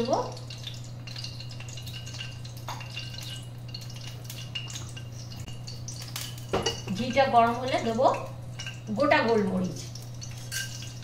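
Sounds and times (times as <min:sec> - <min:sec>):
oil crackling and popping: 0:00.0 - 0:11.0
steady low hum: 0:00.0 - 0:11.0.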